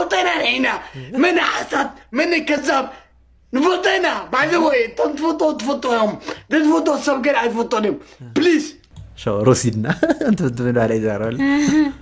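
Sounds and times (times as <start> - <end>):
man speaking: 0.0 - 11.5.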